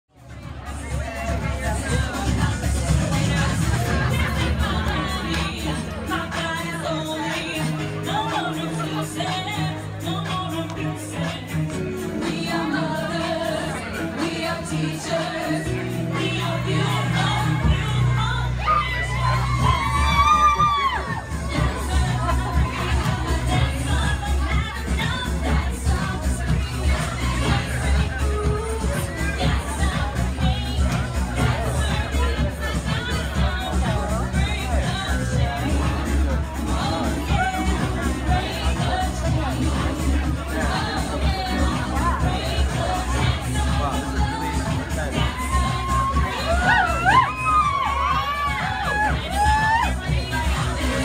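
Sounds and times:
dance music with bass beat: 0:00.1 - 0:51.0
woman cheering shout: 0:18.6 - 0:21.4, 0:45.2 - 0:50.0.

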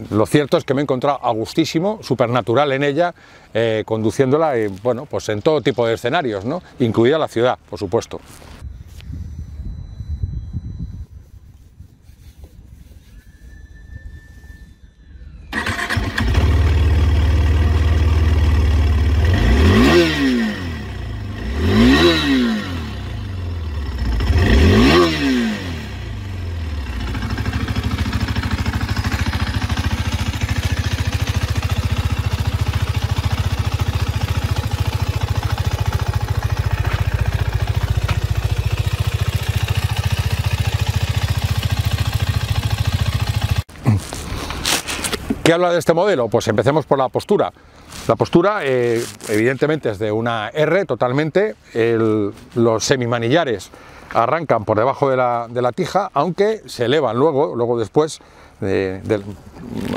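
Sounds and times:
motorcycle engine starting: 0:15.3 - 0:45.1, 0:59.5 - 0:59.9
motorcycle engine idling: 0:15.6 - 0:19.4, 0:22.9 - 0:43.6
motorcycle engine revving: 0:15.6 - 0:43.7.

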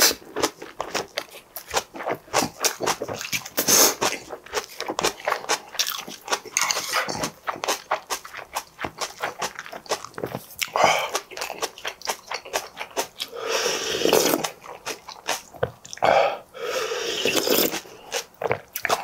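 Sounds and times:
chewing crunchy food: 0:00.0 - 0:16.1, 0:17.2 - 0:19.0
slurping soup: 0:01.6 - 0:19.0.

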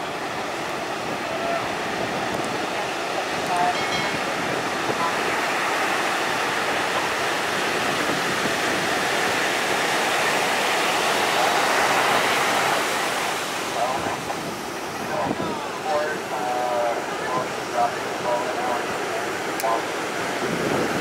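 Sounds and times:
ocean waves breaking: 0:00.0 - 0:21.0.

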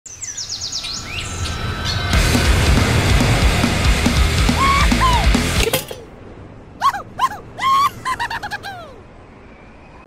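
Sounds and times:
falling whine: 0:00.8 - 0:05.7.

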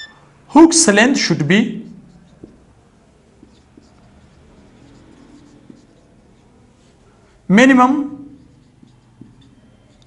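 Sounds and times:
marker squeaking on whiteboard: 0:00.0 - 0:00.3, 0:01.8 - 0:10.0
marker tip tapping board: 0:02.3 - 0:02.7, 0:08.6 - 0:10.0.

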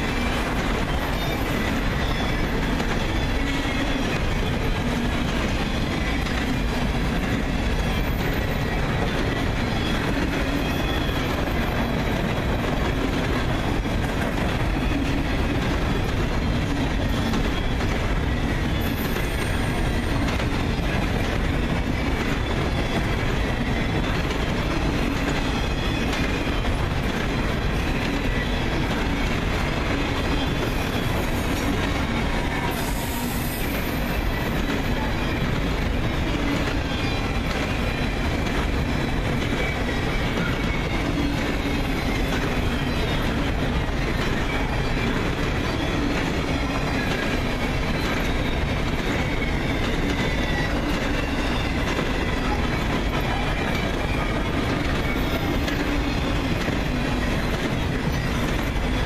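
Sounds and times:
freight train cars rumbling: 0:00.0 - 0:59.0
high wheel squeal: 0:00.0 - 0:59.0
wheels clickety-clack: 0:00.0 - 0:59.0.

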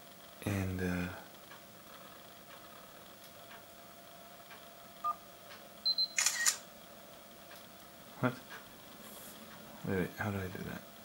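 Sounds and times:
synthetic shutter click: 0:06.1 - 0:06.6.

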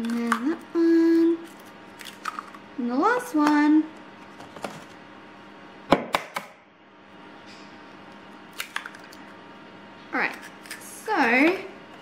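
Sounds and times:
egg cracking against bowl: 0:08.5 - 0:09.3.

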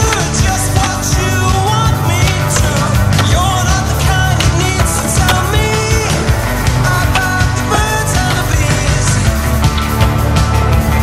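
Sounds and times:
rock music: 0:00.0 - 0:11.0
skateboard rolling on wood: 0:00.0 - 0:11.0.

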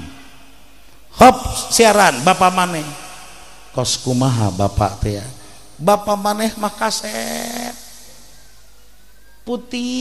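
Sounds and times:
low room noise: 0:00.0 - 0:10.0
man's amplified voice: 0:00.0 - 0:10.0.

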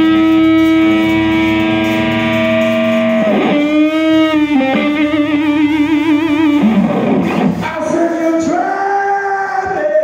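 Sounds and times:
distorted electric guitar note: 0:00.0 - 0:08.6
band playing quietly: 0:00.0 - 0:10.0.

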